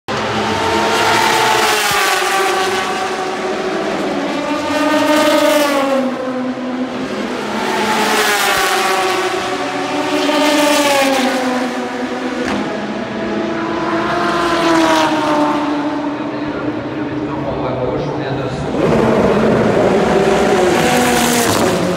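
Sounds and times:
racing cars passing at speed: 0:00.1 - 0:21.9.

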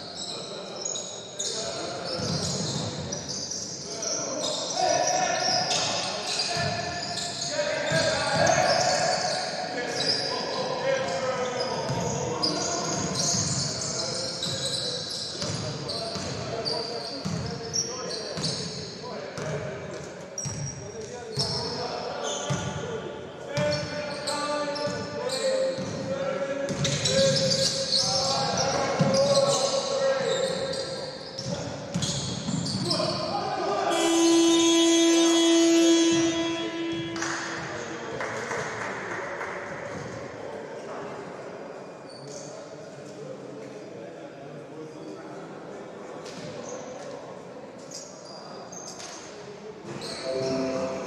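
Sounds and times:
sneakers squeaking: 0:00.0 - 0:19.5, 0:20.4 - 0:22.8, 0:23.6 - 0:26.1, 0:26.7 - 0:33.3, 0:47.9 - 0:51.0.

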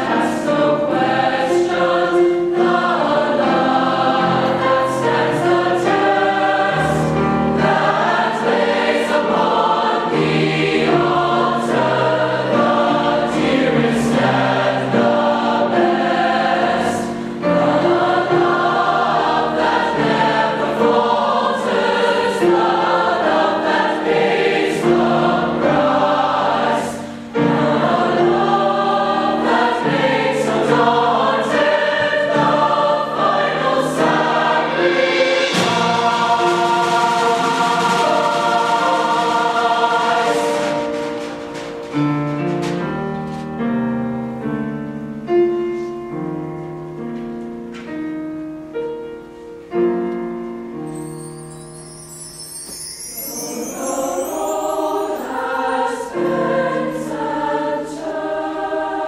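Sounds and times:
choir singing in harmony: 0:00.0 - 0:42.0, 0:50.9 - 0:59.0.

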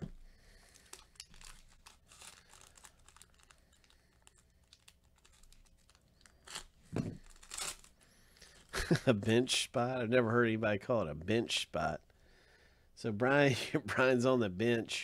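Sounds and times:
foil wrapper crinkling and tearing: 0:00.5 - 0:08.9.

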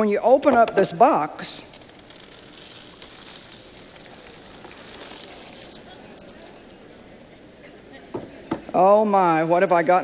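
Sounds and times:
puzzle pieces pouring onto table: 0:01.5 - 0:06.8.

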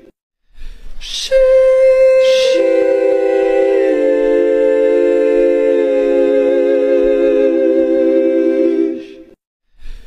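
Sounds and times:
choir-like sustained chord: 0:01.3 - 0:09.2.

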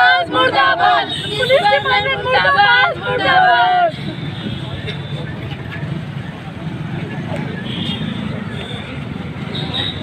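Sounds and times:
crowd murmuring: 0:00.0 - 0:07.7
woman shouting loudly: 0:00.2 - 0:03.9.

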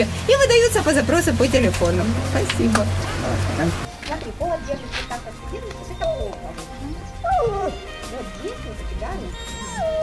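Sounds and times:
background music: 0:00.4 - 0:10.0
small dog whining: 0:07.2 - 0:07.8, 0:09.4 - 0:10.0.

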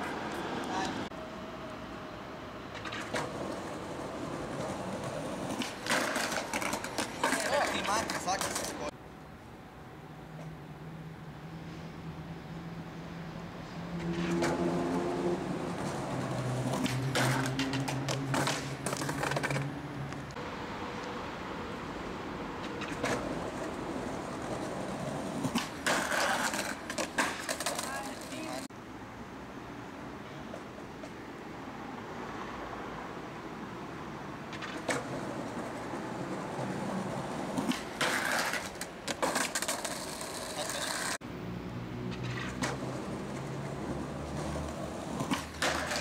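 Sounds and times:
skateboard wheels rolling on stone: 0:02.7 - 0:09.0, 0:14.0 - 0:20.4, 0:22.6 - 0:28.7, 0:34.4 - 0:41.2, 0:42.1 - 0:46.0
skateboard clacks and knocks: 0:02.8 - 0:08.9, 0:15.8 - 0:19.7, 0:22.6 - 0:28.7, 0:34.5 - 0:41.2, 0:42.3 - 0:46.0.

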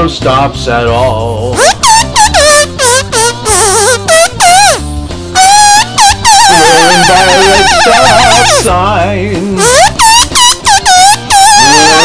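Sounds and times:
blues rock music: 0:00.0 - 0:12.0.

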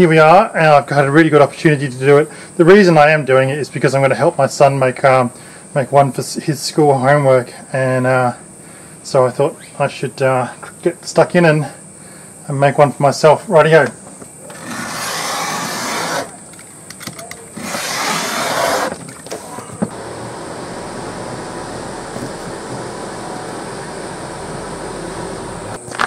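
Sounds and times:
low steady noise: 0:00.0 - 0:26.0
knife cutting through leather: 0:14.5 - 0:16.4, 0:17.6 - 0:19.0.

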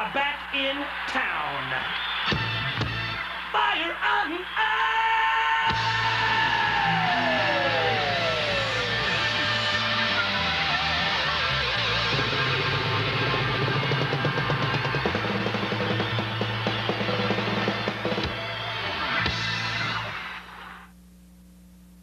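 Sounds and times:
drum hits: 0:02.3 - 0:03.2, 0:13.2 - 0:18.5
hard rock band playing: 0:02.3 - 0:03.5, 0:05.7 - 0:20.4.

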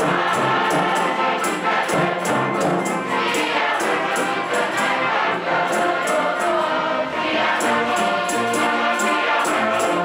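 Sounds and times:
orchestra strings and woodwinds: 0:00.0 - 0:10.0
youth choir singing: 0:00.0 - 0:10.0.

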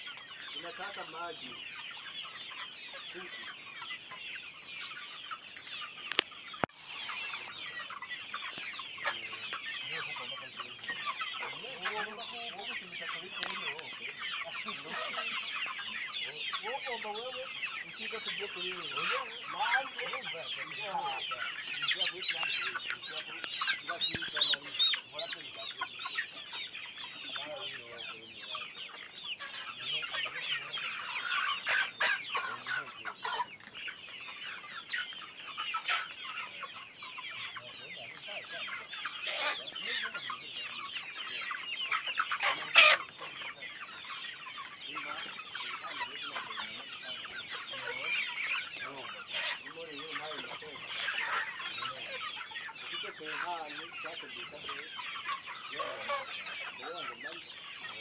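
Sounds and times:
chickens clucking: 0:00.0 - 0:58.0
loud sharp noise: 0:06.7 - 0:07.6.

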